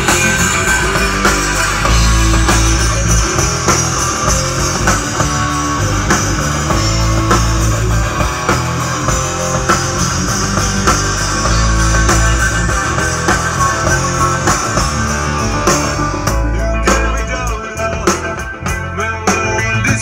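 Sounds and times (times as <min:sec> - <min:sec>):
drum kit: 0:00.0 - 0:20.0
electric guitars: 0:00.0 - 0:20.0.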